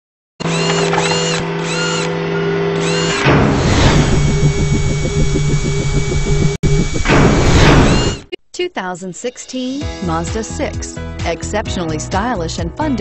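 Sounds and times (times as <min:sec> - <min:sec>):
rising and falling whines: 0:00.4 - 0:08.2
mechanical whir: 0:00.4 - 0:08.3
whoosh: 0:03.3 - 0:08.2
fast pulsing beat: 0:04.0 - 0:08.3.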